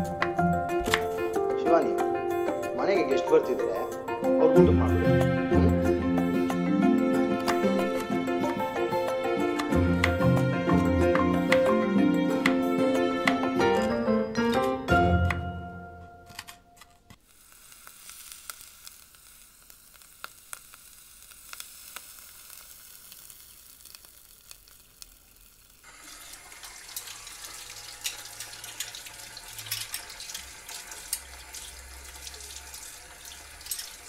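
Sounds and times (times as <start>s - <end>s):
faint hiss: 17.2s - 34.0s
onions frying in oil: 17.2s - 34.0s.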